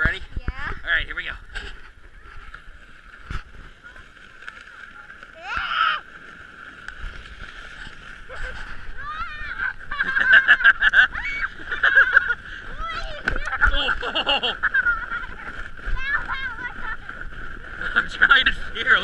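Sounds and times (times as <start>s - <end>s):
sled sliding on snow rush: 0.0s - 19.0s
child and adult giggling: 9.6s - 12.4s, 13.4s - 15.1s.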